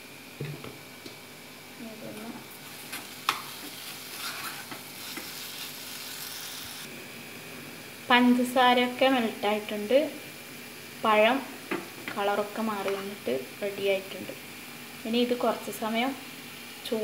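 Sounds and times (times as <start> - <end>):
light sizzle: 0.0 - 17.0.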